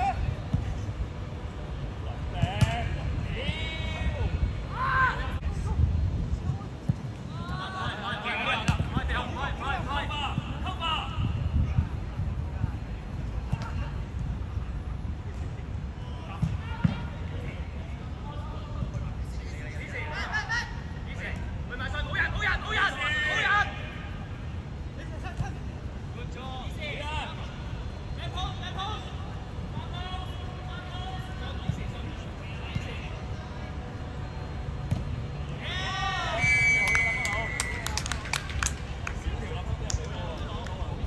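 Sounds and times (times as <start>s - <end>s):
referee's whistle blast: 36.3s - 37.8s
hand claps and high-fives: 36.8s - 39.2s.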